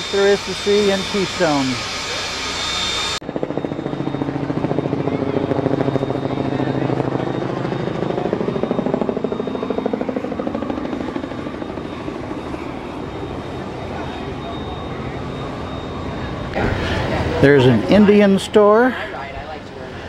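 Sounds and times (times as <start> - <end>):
helicopter rotor beating: 0.0 - 20.0.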